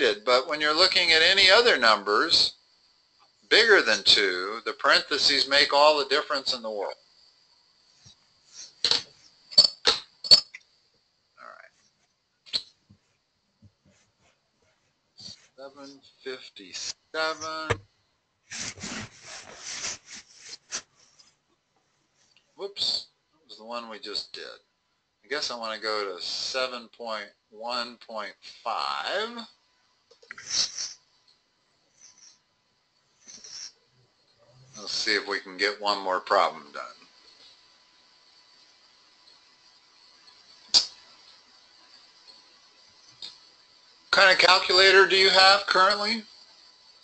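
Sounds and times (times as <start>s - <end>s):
faint background hiss: 0.0s - 47.0s
rubbing and scraping strokes: 18.5s - 21.4s.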